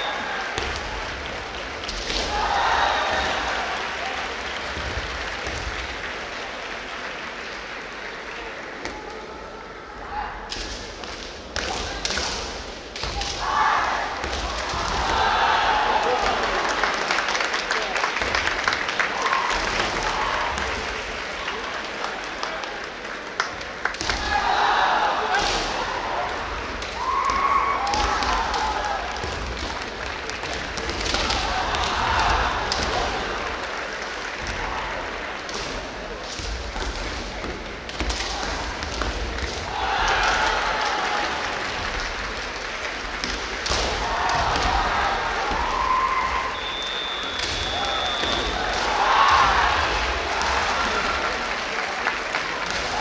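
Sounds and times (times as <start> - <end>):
fencers shouting: 2.1 - 4.0, 13.1 - 16.6, 24.1 - 29.2, 31.0 - 33.4, 38.0 - 41.6, 43.7 - 51.3.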